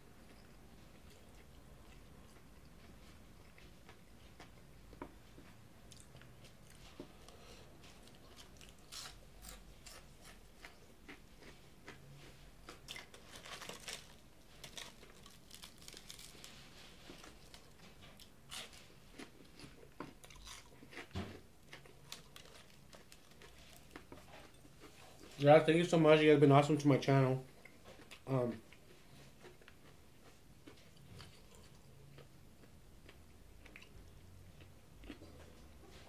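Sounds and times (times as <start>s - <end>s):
chewing crunchy fried food: 0.2s - 25.4s, 27.6s - 36.0s.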